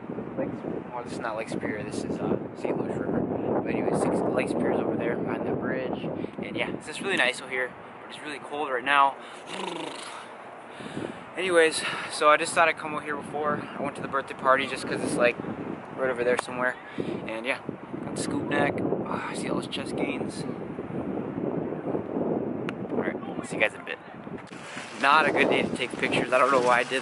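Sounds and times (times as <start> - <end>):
wind noise on microphone: 0.0 - 8.2, 9.5 - 27.0
person grunting: 9.5 - 10.3.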